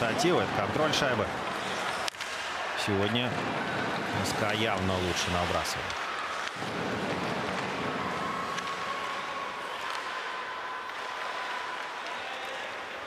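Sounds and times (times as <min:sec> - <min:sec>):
crowd and skating hiss: 0:00.0 - 0:13.0.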